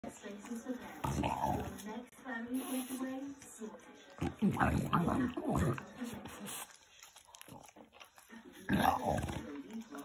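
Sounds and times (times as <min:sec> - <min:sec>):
dog gnawing an apple: 0:02.6 - 0:10.0.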